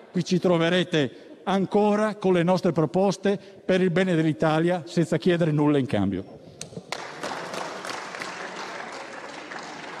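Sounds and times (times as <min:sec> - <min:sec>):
group applause: 0:06.8 - 0:10.0.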